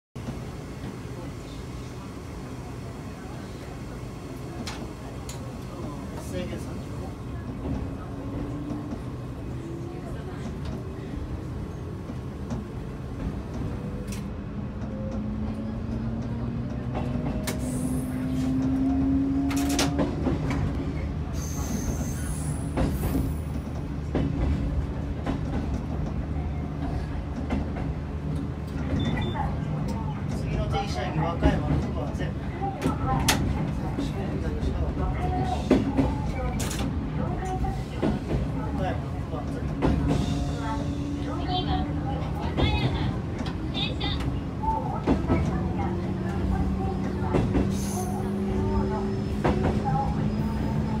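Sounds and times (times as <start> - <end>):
train running rumble: 0.2 - 51.0.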